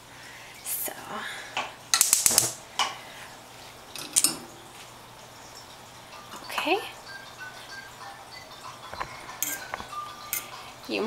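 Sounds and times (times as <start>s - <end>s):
toy playing high-pitched tune: 6.1s - 11.0s
metal spoon clinking in pot: 9.4s - 10.6s.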